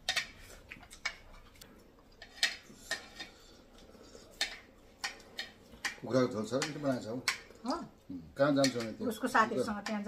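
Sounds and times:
cutlery clinking on plates: 8.6s - 9.0s.

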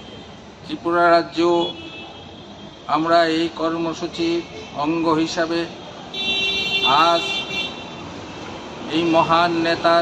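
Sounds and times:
man talking: 0.7s - 1.8s, 2.9s - 5.8s, 6.8s - 7.4s, 8.9s - 10.0s
vehicle horn: 6.2s - 8.0s.

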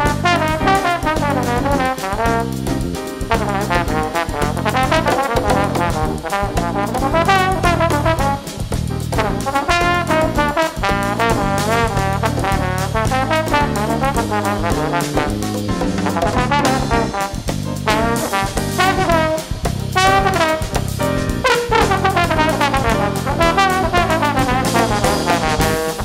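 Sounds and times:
brass solo with vibrato: 0.0s - 2.4s, 3.3s - 8.5s, 9.2s - 15.4s, 16.2s - 20.8s, 21.4s - 26.0s
bass and drums: 0.0s - 26.0s.

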